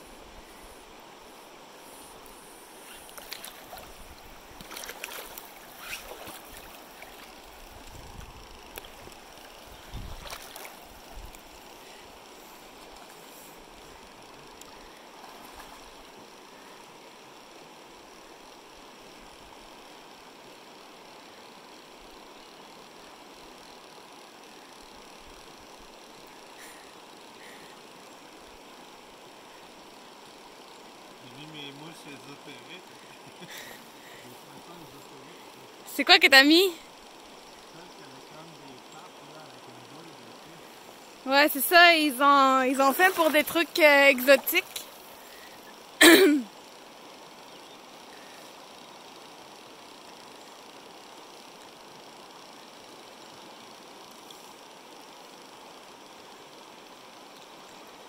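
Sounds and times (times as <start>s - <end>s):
person's voice: 35.9s - 36.8s, 41.3s - 44.8s, 46.0s - 46.4s.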